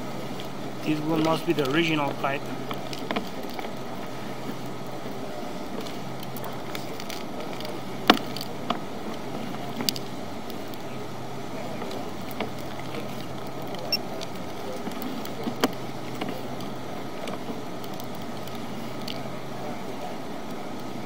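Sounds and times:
sharp clicks and knocks: 0:05.8 - 0:08.9.

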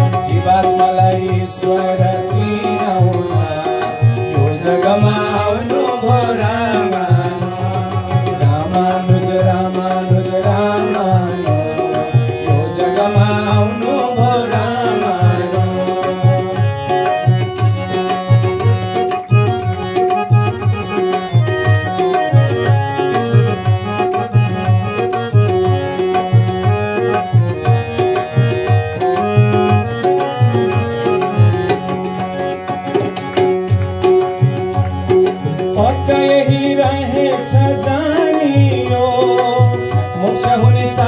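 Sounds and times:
man singing into microphone: 0:00.0 - 0:17.4, 0:35.6 - 0:41.0
hand drum rhythm: 0:00.0 - 0:41.0
harmonium notes: 0:00.0 - 0:41.0.

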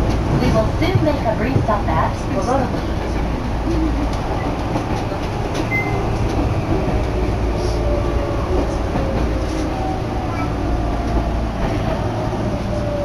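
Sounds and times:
train rumble: 0:00.0 - 0:13.0.

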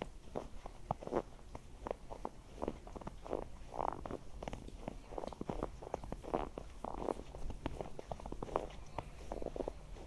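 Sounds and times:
footsteps on snow: 0:00.0 - 0:10.0.

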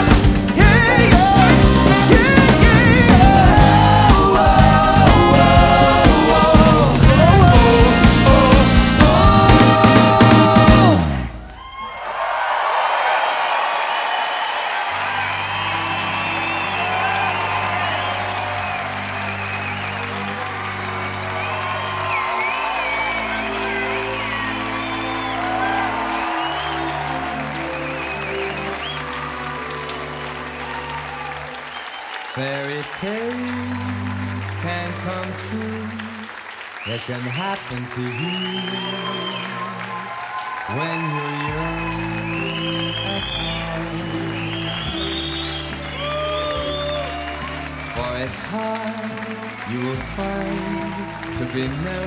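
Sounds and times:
band playing low chords: 0:00.0 - 0:11.4, 0:15.0 - 0:31.7, 0:41.5 - 0:52.0
crowd shouting: 0:00.0 - 0:33.0, 0:38.4 - 0:43.6
audience applauding and cheering: 0:00.0 - 0:52.0.

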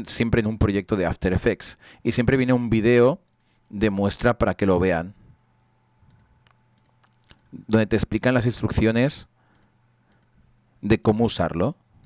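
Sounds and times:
computer mouse clicks: 0:03.2 - 0:03.7, 0:06.0 - 0:07.5, 0:09.5 - 0:10.4.

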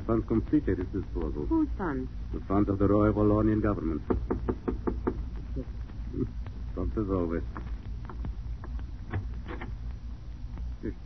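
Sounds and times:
knocks on a door: 0:03.8 - 0:05.4.

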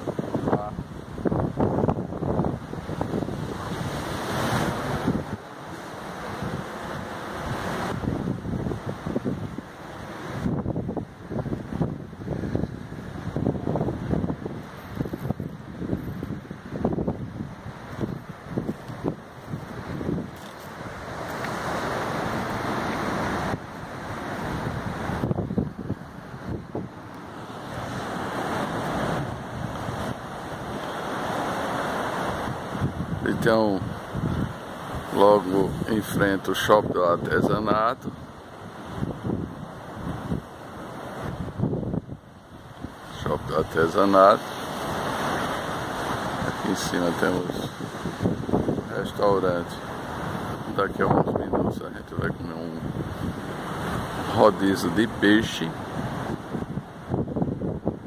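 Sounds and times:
surf washing against rocks: 0:00.0 - 0:58.0
wind buffeting microphone: 0:00.0 - 0:58.0.

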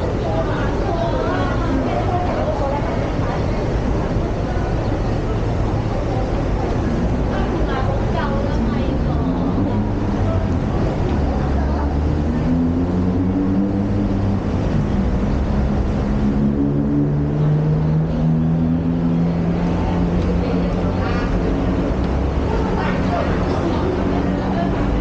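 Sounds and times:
heavy vehicle engines humming: 0:00.0 - 0:25.0
passers-by talking: 0:00.0 - 0:25.0.

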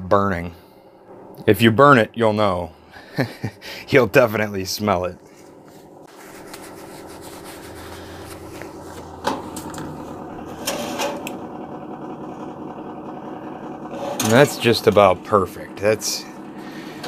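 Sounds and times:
toaster oven fan humming: 0:00.0 - 0:17.0
pan or rack clattering: 0:13.9 - 0:14.6.

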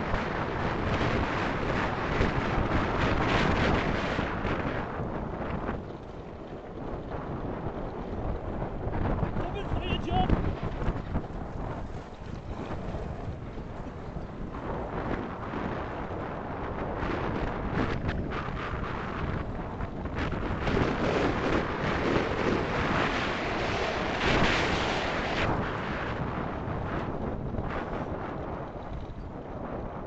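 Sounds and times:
kart tyres rumbling over gravel: 0:00.0 - 0:30.0
wind buffeting microphone: 0:00.0 - 0:30.0.

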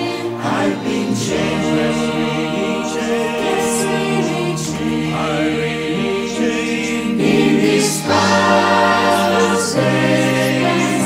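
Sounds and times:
gospel choir singing in harmony: 0:00.0 - 0:11.0.

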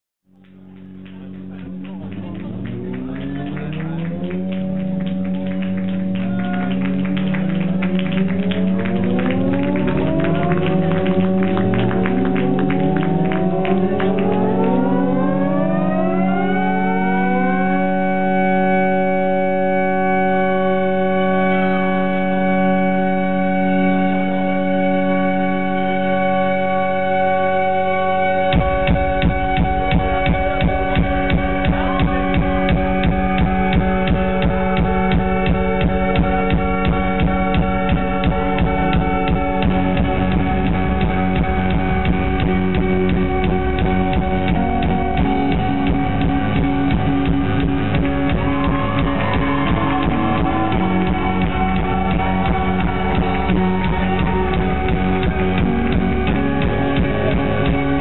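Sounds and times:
bass: 0:00.2 - 0:58.0
sustained synthesizer chords: 0:00.3 - 0:58.0
fast drum beat: 0:28.5 - 0:58.0.

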